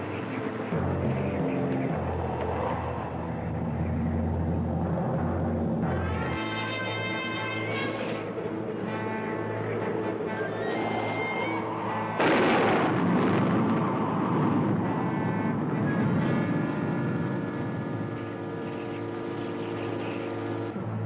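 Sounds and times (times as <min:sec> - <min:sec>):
loud crash: 0:12.2 - 0:14.7.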